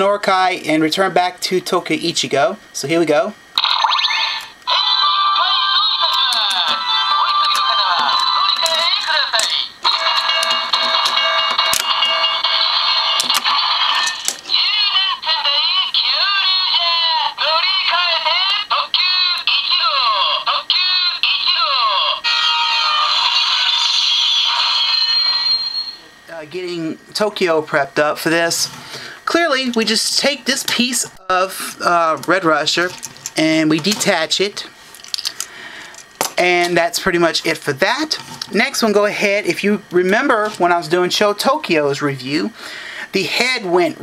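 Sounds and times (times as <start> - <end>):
electronic beeps: 3.6 - 4.6
synthesized voice calling out: 3.6 - 9.8
jingle music: 3.8 - 16.4, 23.5 - 26.1.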